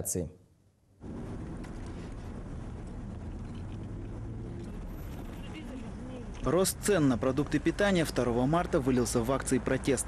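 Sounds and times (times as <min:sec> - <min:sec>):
road traffic rumble: 0:01.0 - 0:10.0.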